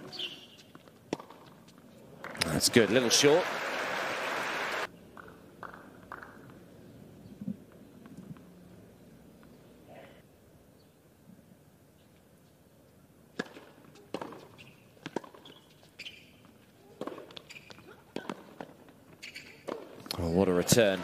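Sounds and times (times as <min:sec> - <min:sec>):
sneaker squeaks: 0:00.0 - 0:00.8, 0:13.9 - 0:18.5, 0:19.1 - 0:19.9
tennis ball bounces: 0:00.0 - 0:01.6, 0:05.2 - 0:06.6, 0:13.3 - 0:15.7, 0:16.4 - 0:21.0.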